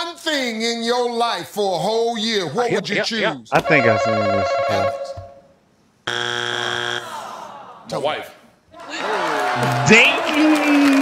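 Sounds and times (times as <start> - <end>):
game show buzzer: 3.6 - 5.4, 6.1 - 7.2.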